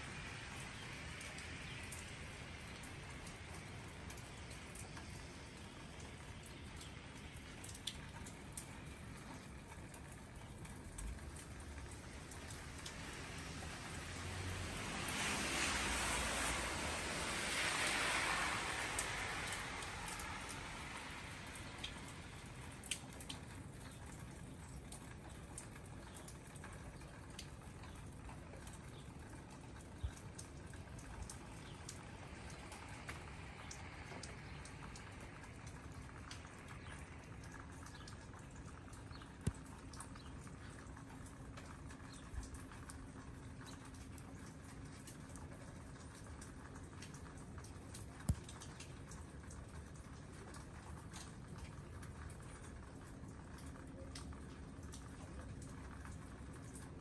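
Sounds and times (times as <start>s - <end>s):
hiss of falling snow: 13.0s - 22.8s.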